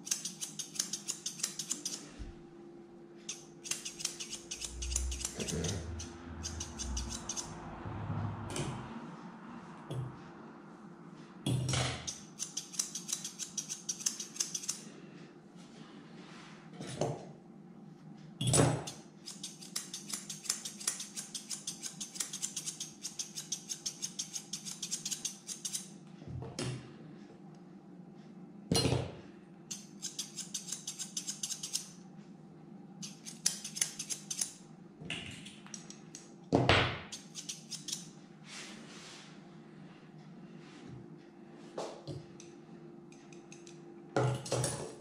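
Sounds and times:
scissors snipping hair: 0:00.0 - 0:02.0, 0:03.3 - 0:07.6, 0:12.0 - 0:14.8, 0:18.8 - 0:25.9, 0:29.7 - 0:32.0, 0:33.0 - 0:34.6, 0:37.1 - 0:38.1, 0:43.2 - 0:43.8.

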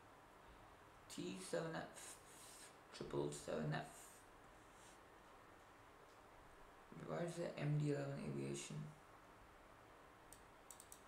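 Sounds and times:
computer mouse clicks: 0:10.3 - 0:11.0.

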